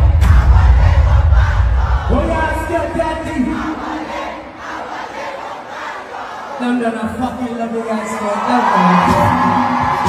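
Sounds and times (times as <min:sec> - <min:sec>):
heavy bass from sound system: 0:00.0 - 0:03.8
crowd shouting and cheering: 0:00.0 - 0:10.0.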